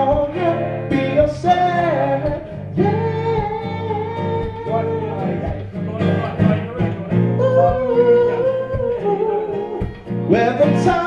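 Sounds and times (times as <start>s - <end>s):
acoustic guitar strumming: 0.0s - 11.0s
man singing wordless notes: 0.0s - 11.0s.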